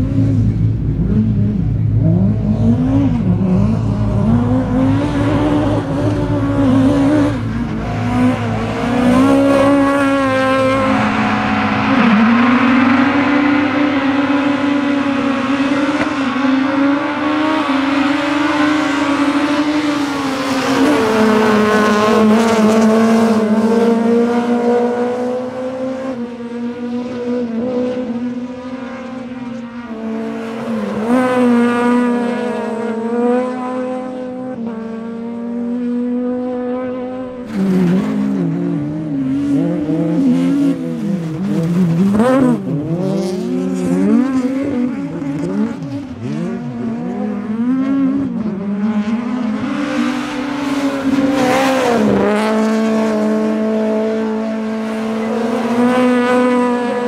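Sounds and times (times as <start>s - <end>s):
steady engine drone: 0.0s - 35.6s
race car engines revving: 0.0s - 57.0s.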